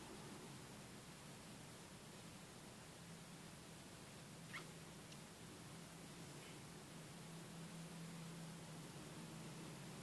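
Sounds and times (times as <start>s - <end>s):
steady low hum: 0.0s - 10.0s
brief high squeak: 4.5s - 4.7s.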